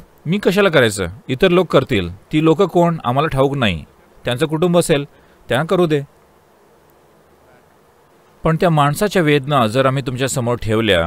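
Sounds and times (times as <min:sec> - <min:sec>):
low background hiss: 0:00.0 - 0:11.0.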